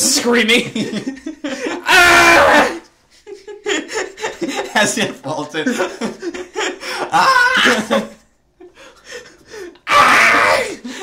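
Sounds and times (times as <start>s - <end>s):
man mock screaming: 1.8s - 2.8s, 7.1s - 7.9s, 9.9s - 10.8s
bursts of laughter: 5.6s - 8.2s.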